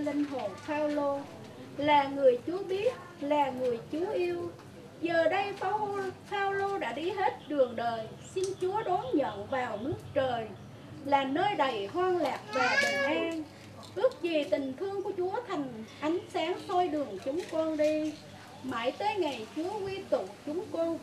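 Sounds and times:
woman reciting prayer: 0:00.0 - 0:21.0.

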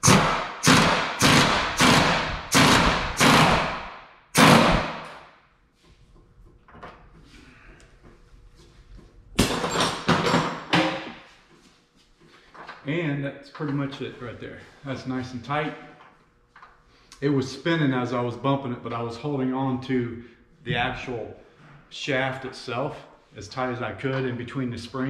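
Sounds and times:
pneumatic impact wrench hammering: 0:00.0 - 0:05.2.

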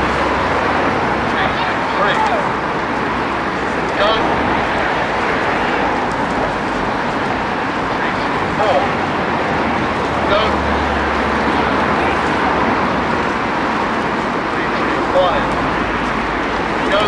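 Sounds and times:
outdoor rumble and hiss: 0:00.0 - 0:17.0.

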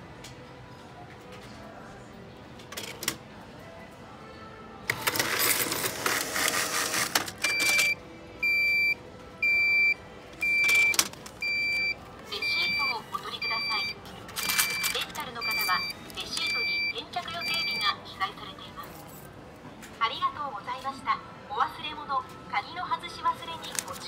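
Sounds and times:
change dispenser clattering and whirring: 0:02.7 - 0:03.2, 0:04.9 - 0:08.0, 0:10.4 - 0:11.8, 0:14.0 - 0:16.6
coins rattling in tray: 0:05.0 - 0:07.9, 0:14.3 - 0:15.9.

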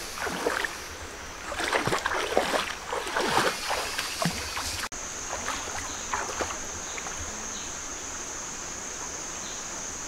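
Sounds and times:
water splashing under wading feet: 0:00.0 - 0:00.8, 0:01.4 - 0:07.2.

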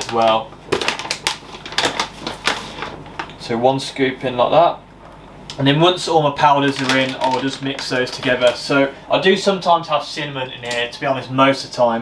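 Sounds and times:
plastic pouch crinkling: 0:00.0 - 0:03.4, 0:06.5 - 0:08.9.

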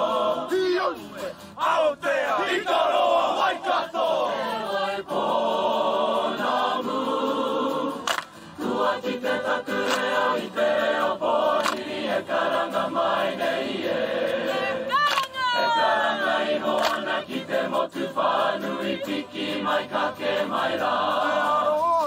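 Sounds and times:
mixed choir singing: 0:00.0 - 0:22.0
hand claps: 0:08.0 - 0:08.6, 0:09.7 - 0:10.5, 0:11.5 - 0:12.2, 0:15.0 - 0:15.6, 0:16.7 - 0:17.3.

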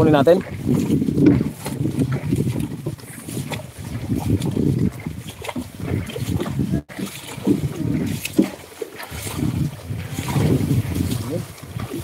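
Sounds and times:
sloshing and splashing mud: 0:00.0 - 0:12.0.

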